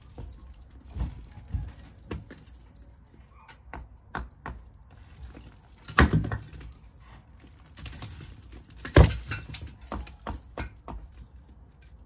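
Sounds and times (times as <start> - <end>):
hammer knocking bricks: 3.6 - 6.7, 8.7 - 11.4.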